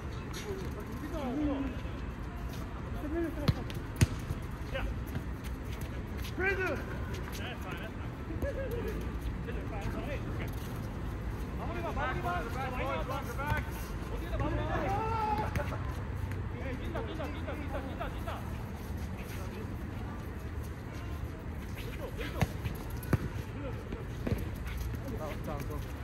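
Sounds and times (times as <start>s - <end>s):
ball kicked and bouncing: 3.4s - 4.4s, 22.3s - 25.7s
players shouting: 14.4s - 15.8s.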